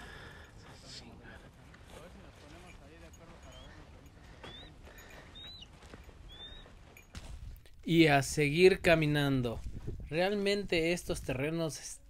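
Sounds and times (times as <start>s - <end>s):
distant voices talking: 0.5s - 5.6s
wind rumble on microphone: 8.7s - 10.2s.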